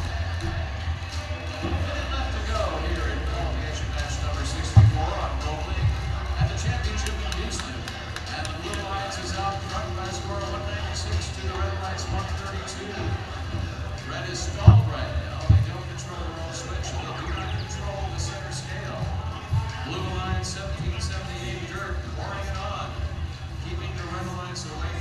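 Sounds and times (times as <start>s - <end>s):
crowd noise: 0.0s - 25.0s
music with heavy bass: 0.0s - 25.0s
announcer speaking: 1.3s - 25.0s.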